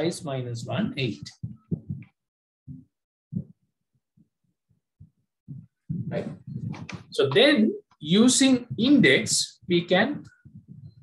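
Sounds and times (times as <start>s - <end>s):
soft low sounds near microphone: 0.0s - 11.0s
man speaking: 7.1s - 10.3s.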